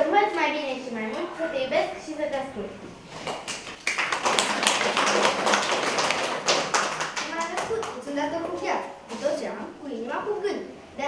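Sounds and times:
audience clapping: 3.1s - 8.1s.

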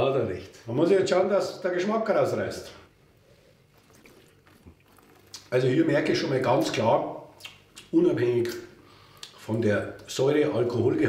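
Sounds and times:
wine sipping mouth sounds: 3.3s - 5.6s, 7.4s - 7.9s.

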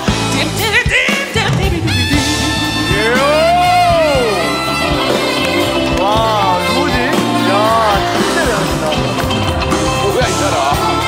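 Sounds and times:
live band instrumental music: 0.0s - 11.0s.

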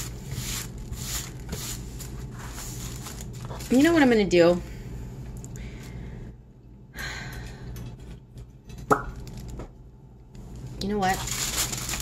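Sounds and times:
tissue paper rustling: 0.0s - 4.2s, 11.0s - 12.0s.

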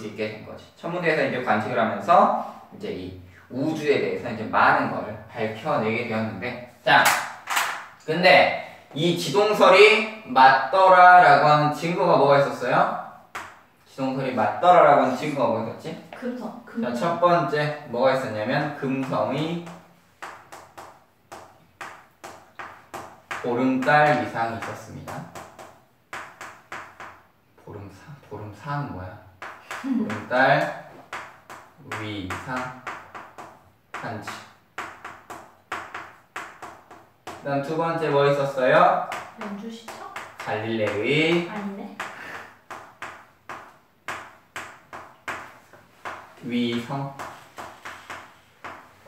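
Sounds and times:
chalk tapping on chalkboard: 13.3s - 13.6s, 18.7s - 27.3s, 29.4s - 49.0s
chalk writing on chalkboard: 39.1s - 49.0s.

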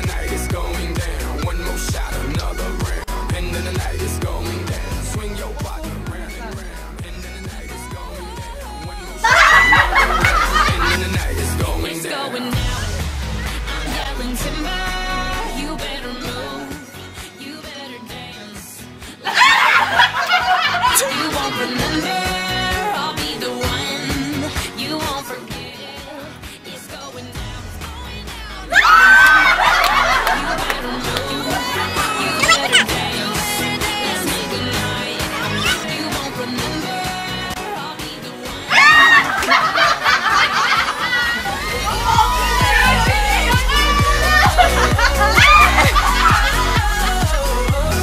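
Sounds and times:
pop song in background: 0.0s - 48.0s
women laughing loudly: 9.2s - 11.4s, 19.2s - 22.0s, 28.7s - 33.1s, 35.2s - 36.0s, 38.7s - 47.9s.

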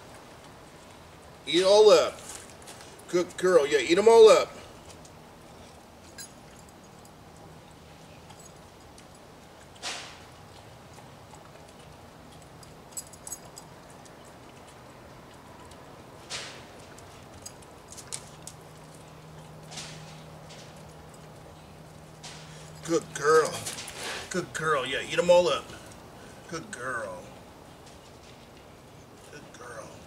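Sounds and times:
faint steady hum: 0.0s - 30.0s
dog chewing food: 6.7s - 24.1s.

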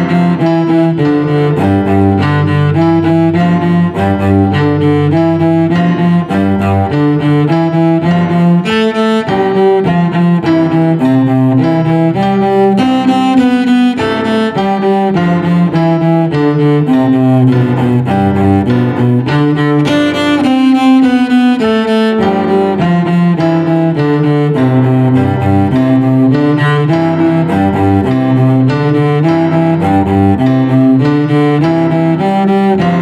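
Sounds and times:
cello bowed slowly: 0.0s - 33.0s.

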